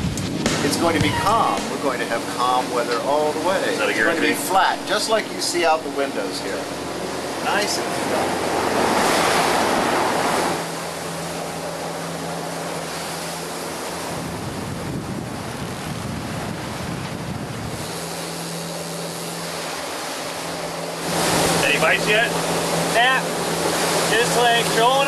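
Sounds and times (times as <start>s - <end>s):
diesel engines droning: 0.0s - 14.5s, 17.6s - 25.0s
wind buffeting microphone: 0.0s - 24.8s
water rushing in boat wake: 0.0s - 25.0s.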